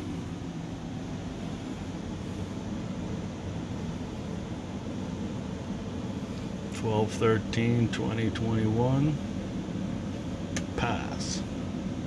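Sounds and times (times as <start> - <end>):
low hum of equipment fans: 0.0 - 12.0.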